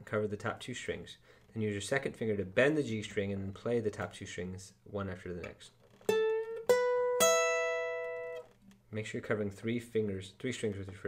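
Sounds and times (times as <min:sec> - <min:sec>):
acoustic guitar notes ringing: 0:06.0 - 0:08.6.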